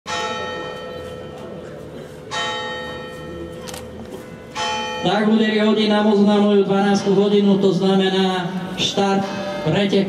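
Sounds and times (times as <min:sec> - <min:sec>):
tower bell striking: 0:04.2 - 0:06.2, 0:09.2 - 0:10.0.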